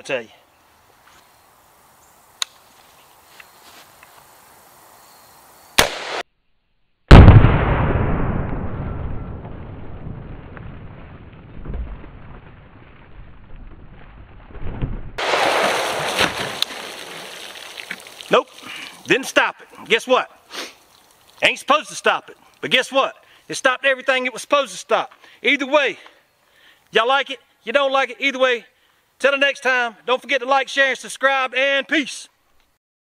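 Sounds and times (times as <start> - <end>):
rifle shot with rumble: 5.8 - 6.2, 7.1 - 12.7.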